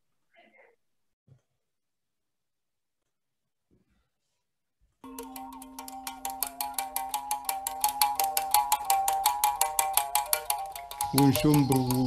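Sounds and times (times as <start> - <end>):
musical bow string struck rhythmically: 5.0 - 12.0.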